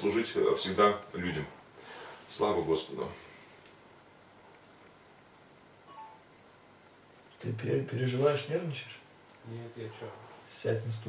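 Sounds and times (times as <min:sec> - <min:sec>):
two-tone electronic beep: 0:05.9 - 0:06.4.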